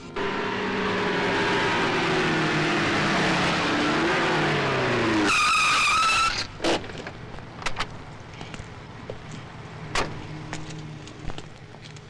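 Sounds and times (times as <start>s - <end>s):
car engine accelerating: 0.0s - 5.6s
high-pitched tyre squeal: 0.0s - 6.8s.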